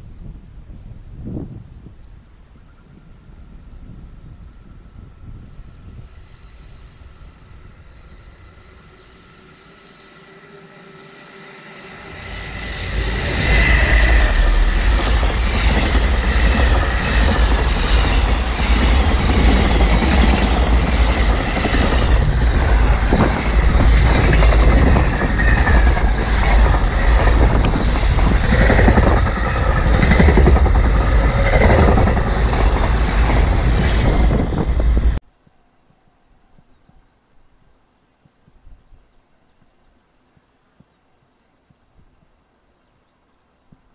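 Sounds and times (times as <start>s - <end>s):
freight train passing: 2.7s - 35.2s.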